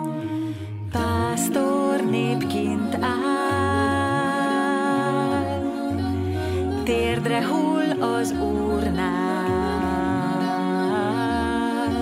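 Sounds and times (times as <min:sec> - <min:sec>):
low sustained bass: 0:00.0 - 0:12.0
women singing in harmony: 0:00.0 - 0:12.0.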